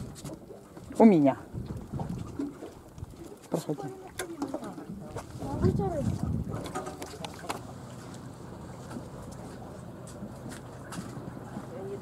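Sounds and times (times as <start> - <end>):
motor boat engine humming: 0.0 - 12.0.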